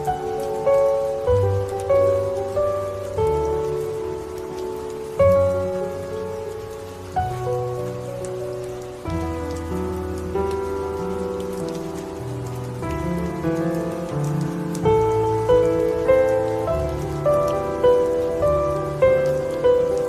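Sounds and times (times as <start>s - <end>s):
pattering rain: 0.0s - 20.0s
soft piano chords: 0.0s - 20.0s.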